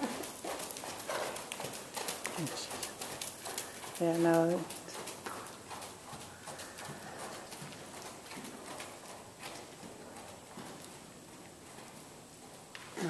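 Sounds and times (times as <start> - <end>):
horse hoofbeats on dirt: 0.0 - 13.0.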